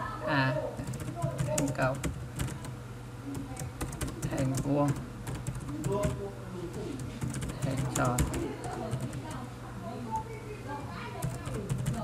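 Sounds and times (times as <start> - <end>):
steady low hum: 0.0 - 12.0
computer keyboard keys clicking: 0.8 - 2.7, 3.3 - 9.4, 11.2 - 12.0.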